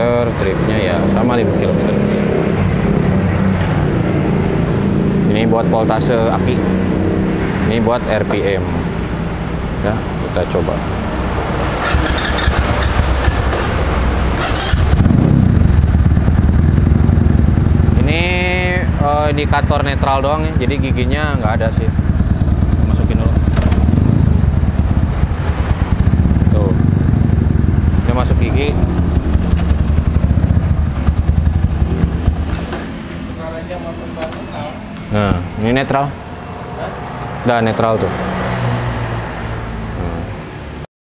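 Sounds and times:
motorcycle engine running: 10.9 - 35.8.

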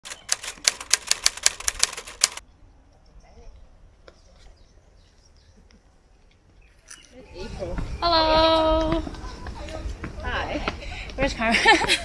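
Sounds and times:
typewriter keys clacking: 0.0 - 2.4.

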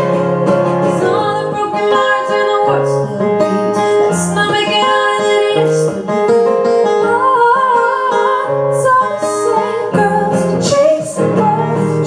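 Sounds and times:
acoustic guitars: 0.0 - 12.0.

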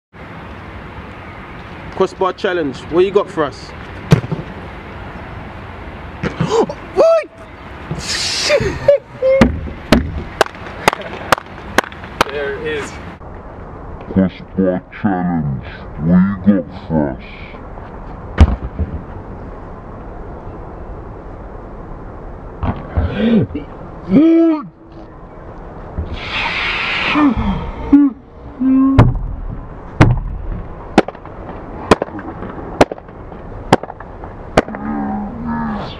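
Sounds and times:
outdoor background noise: 0.1 - 35.9
low background noise: 0.2 - 35.9
football kicked hard: 4.1 - 4.4, 18.4 - 19.0
sharp knocks: 4.1 - 4.5, 9.4 - 12.3, 29.0 - 31.3.

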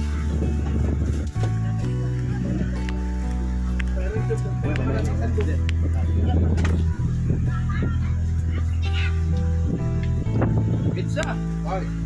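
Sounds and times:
people chattering: 0.0 - 11.9
music with heavy bass: 0.0 - 12.0.

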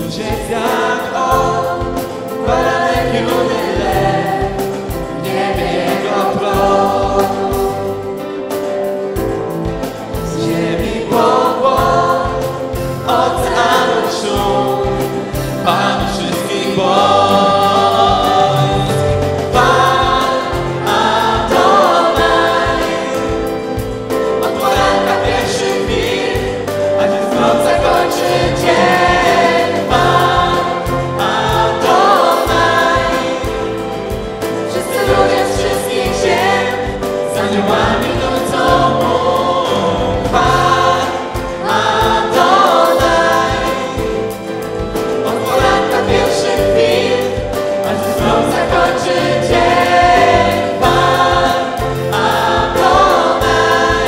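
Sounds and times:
women singing worship song: 0.0 - 8.2, 10.2 - 54.0.

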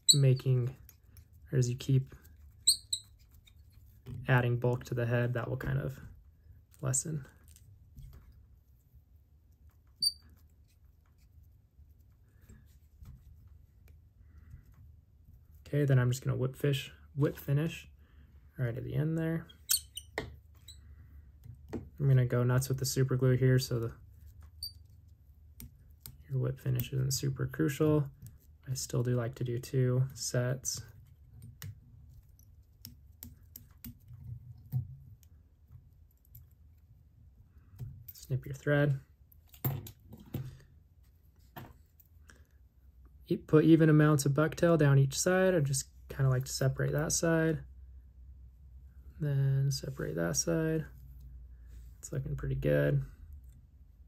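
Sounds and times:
faint low room noise: 0.0 - 54.0
high-pitched squeak: 2.6 - 3.2, 19.6 - 20.8.

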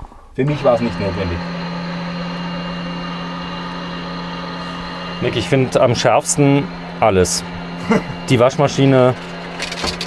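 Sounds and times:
faint high whine: 0.4 - 10.0
low machine drone: 0.4 - 10.0.

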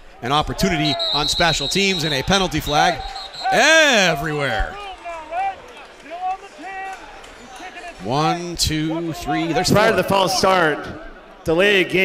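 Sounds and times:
commentary speech: 0.2 - 12.0.

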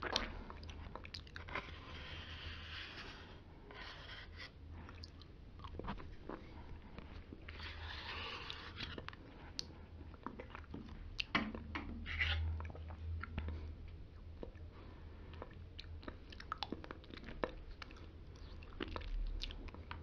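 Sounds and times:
plastic spoon scraping cup: 1.4 - 4.6, 7.5 - 9.1
wet mouth eating noises: 15.3 - 20.0.

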